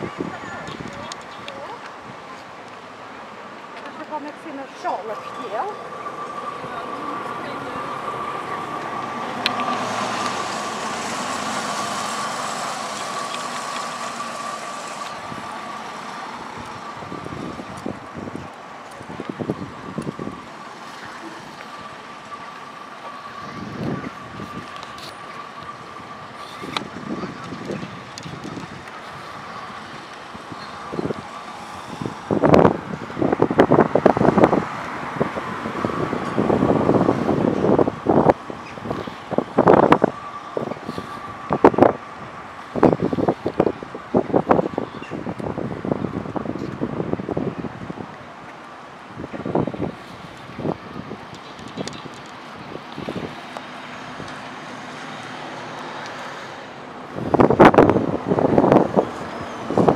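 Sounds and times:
road traffic: 0.0 - 59.9
wind buffeting microphone: 0.0 - 59.9
vehicle passing: 2.8 - 59.9.

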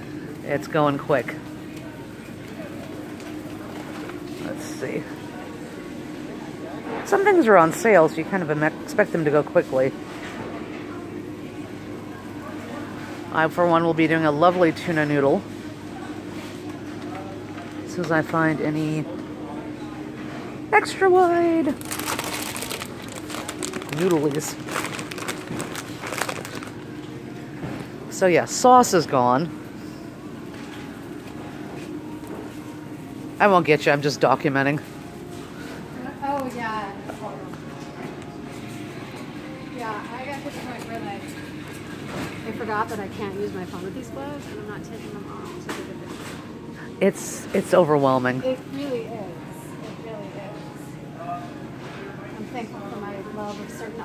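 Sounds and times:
steady low hum: 0.0 - 54.0
faint indistinct voices: 1.2 - 28.0, 48.4 - 54.0.

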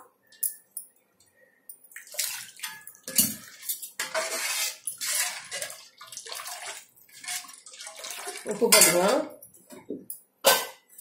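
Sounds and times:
liquid splashing into a pot: 1.9 - 9.2.

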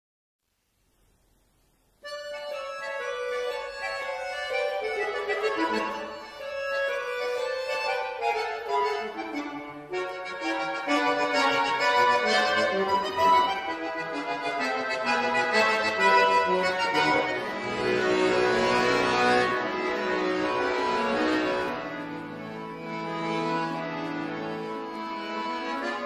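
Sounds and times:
accordion solo piece: 2.0 - 26.0.

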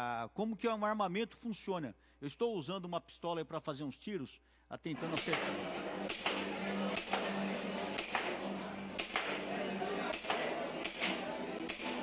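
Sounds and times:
airsoft pistol shots: 5.1 - 7.3, 9.0 - 9.4.

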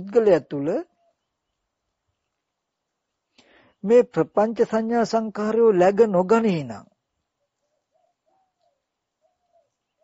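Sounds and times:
faint bird calling: 7.4 - 10.0.

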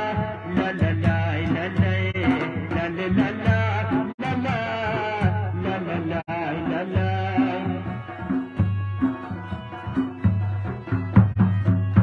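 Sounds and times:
drum beats: 0.0 - 12.0.

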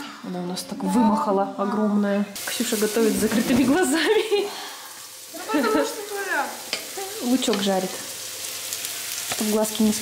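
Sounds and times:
onions sizzling in a frying pan: 0.8 - 10.0.

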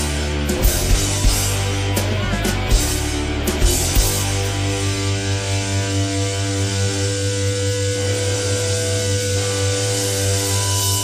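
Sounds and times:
electric guitar chord drone: 0.0 - 11.0.

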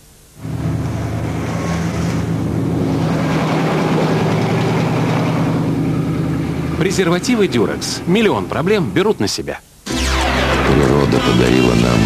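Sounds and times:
vehicle engine running low revs: 0.4 - 7.6
street noise: 0.4 - 9.0, 9.9 - 12.0.

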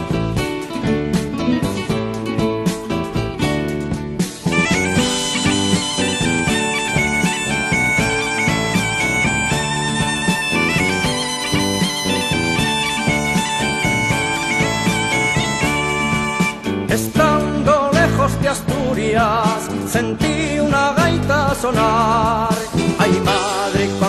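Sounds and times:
lower instrumental accompaniment: 0.0 - 24.0
bagpipe melody over drone: 4.6 - 16.6.

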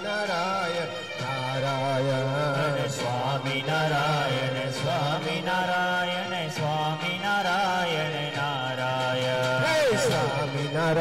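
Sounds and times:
devotional chanting: 0.0 - 11.0.

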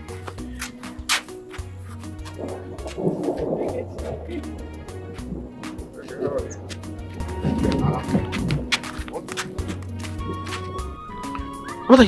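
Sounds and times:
music with steady bass line: 0.0 - 12.0
thunder rumbling: 2.3 - 12.0.

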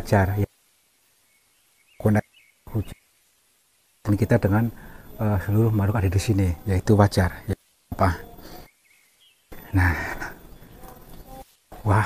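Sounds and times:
faint low noise: 0.0 - 12.0.

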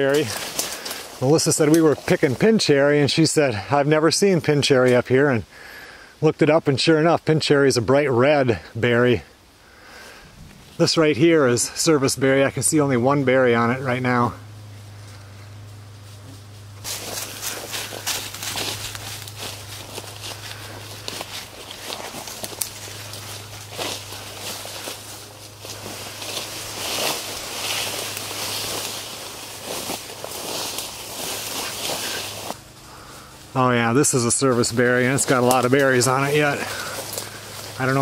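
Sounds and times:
footsteps through brush: 0.0 - 3.8, 9.8 - 38.0
leaves and stems rustling: 0.0 - 5.3, 8.3 - 38.0.

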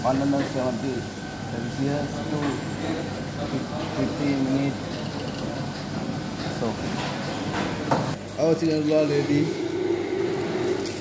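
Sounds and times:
kitchen equipment running: 0.0 - 11.0.

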